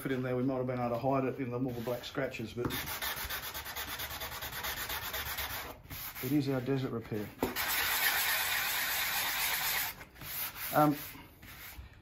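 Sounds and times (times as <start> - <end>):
sanding block scrubbing: 2.8 - 6.8, 7.6 - 11.8.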